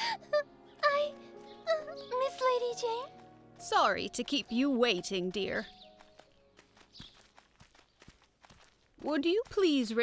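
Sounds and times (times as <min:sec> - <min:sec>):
faint soft footsteps: 0:02.4 - 0:10.0.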